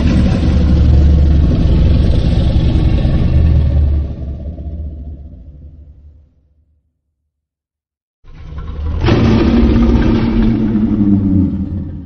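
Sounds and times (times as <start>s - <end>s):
deep rumbling monster roar: 0.0s - 6.6s, 8.3s - 12.0s.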